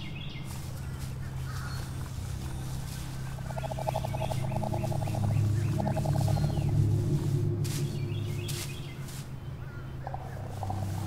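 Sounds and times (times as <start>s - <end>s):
faint bird chirps: 0.0s - 11.0s
steady low hum: 0.0s - 11.0s
rattling trilling animal call: 3.4s - 6.8s.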